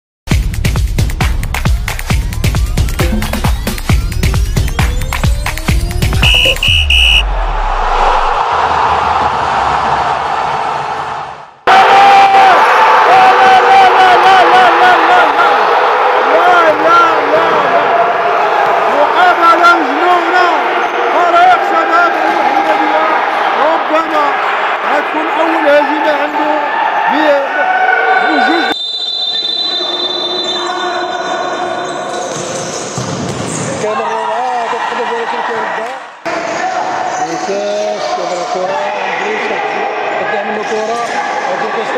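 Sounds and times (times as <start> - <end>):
crowd noise in indoor arena: 4.4 - 41.9
long held tones: 4.5 - 7.8
short high beeps: 4.6 - 7.2
low rumble: 7.2 - 8.4.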